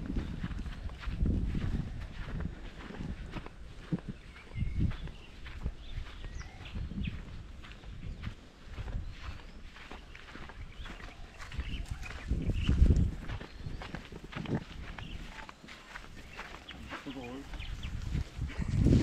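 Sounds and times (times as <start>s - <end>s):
footsteps on dirt path: 0.0s - 19.0s
wind buffeting microphone: 0.0s - 19.0s
bird chirps: 3.9s - 18.3s.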